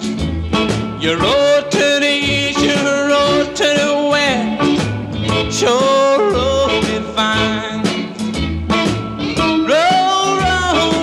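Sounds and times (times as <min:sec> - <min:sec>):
blues band playing: 0:00.0 - 0:11.0
sliding electric guitar lead: 0:00.0 - 0:11.0
steady bass notes: 0:00.0 - 0:11.0.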